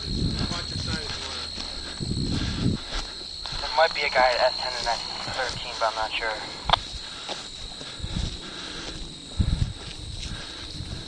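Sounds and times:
low rumbling noise: 0.0 - 7.2
faint high-pitched whine: 0.0 - 11.0
man talking: 0.4 - 1.6, 3.6 - 6.8.

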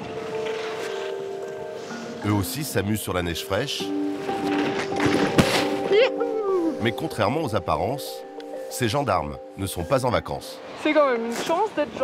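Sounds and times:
background music: 0.0 - 12.0
skis swishing through snow: 0.2 - 2.1, 4.2 - 6.0
sharp crack: 4.8 - 5.9.

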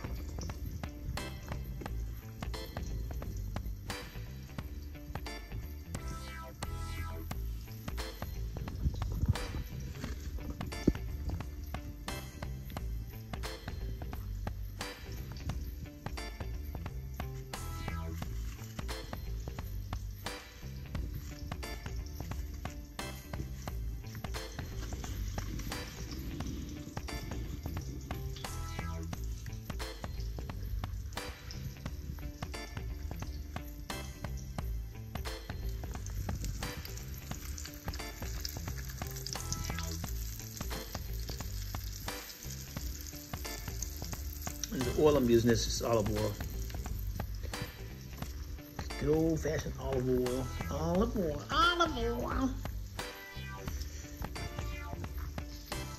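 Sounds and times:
fish sizzling in a pan: 0.0 - 55.9.

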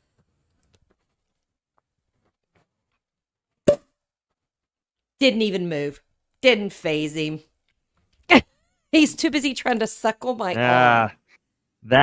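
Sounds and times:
champagne cork popping: 3.7 - 3.9.

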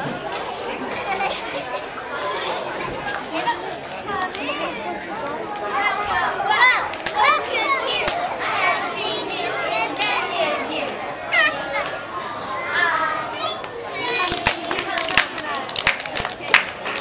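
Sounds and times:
young children chattering: 0.0 - 17.0.

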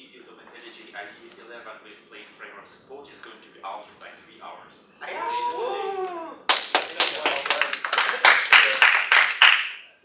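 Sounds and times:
audience applauding: 6.5 - 9.8.

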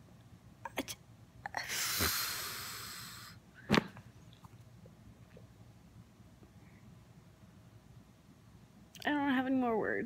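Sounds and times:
breath blown out: 1.6 - 3.4.

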